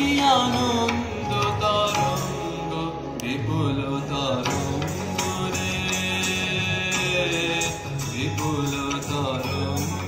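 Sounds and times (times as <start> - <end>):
solo voice singing: 0.0 - 10.0.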